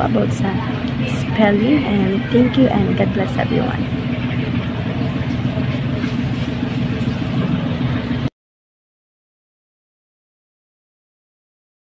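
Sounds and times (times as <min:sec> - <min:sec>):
low engine hum: 0:00.0 - 0:08.3.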